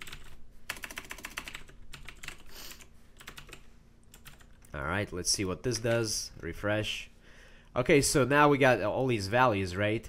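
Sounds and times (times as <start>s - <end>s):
typing on computer keyboard: 0.0s - 4.7s.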